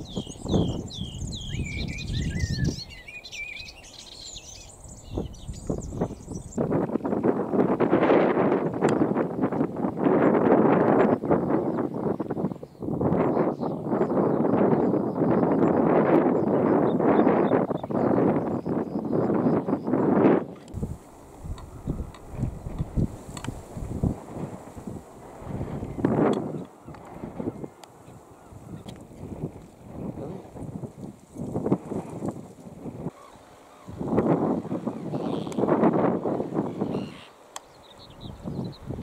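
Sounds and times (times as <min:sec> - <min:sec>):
warbler singing: 0:00.0 - 0:06.6, 0:11.4 - 0:20.2, 0:36.5 - 0:39.0
wind buffeting microphone: 0:00.0 - 0:39.0.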